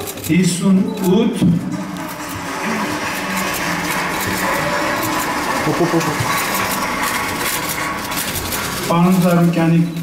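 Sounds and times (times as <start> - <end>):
audience applause: 1.7 - 9.0.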